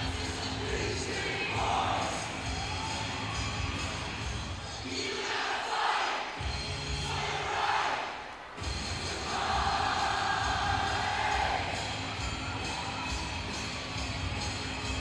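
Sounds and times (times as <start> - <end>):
crowd chanting: 0.0 - 3.1, 4.6 - 12.0
rock music: 0.0 - 4.9, 6.4 - 7.3, 8.6 - 15.0
crowd shouting and cheering: 0.0 - 15.0.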